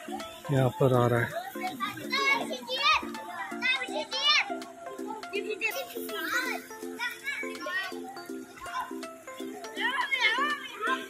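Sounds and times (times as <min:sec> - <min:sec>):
background music: 0:00.0 - 0:11.0
children calling and squealing: 0:00.0 - 0:11.0.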